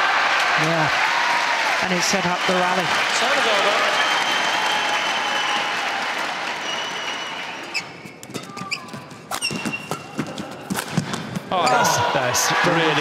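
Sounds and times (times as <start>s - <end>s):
arena crowd noise: 0.0s - 9.3s, 9.9s - 13.0s
shoes squeaking on court: 7.6s - 10.8s.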